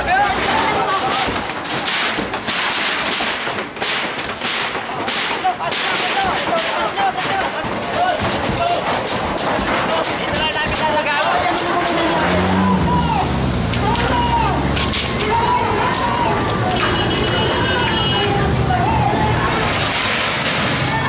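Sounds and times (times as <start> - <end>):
people's voices: 0.0 - 2.5, 4.3 - 21.0
banging and crashing of timber: 0.0 - 21.0.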